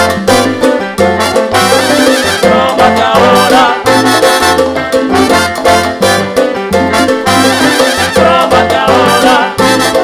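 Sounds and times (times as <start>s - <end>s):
latin percussion: 0.0s - 10.0s
trumpets and trombones: 0.0s - 10.0s
upright bass line: 0.0s - 10.0s.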